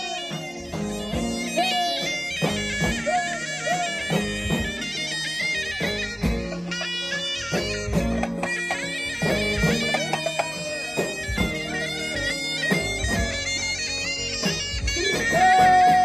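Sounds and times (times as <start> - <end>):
reed wind instrument melody: 0.0 - 16.0.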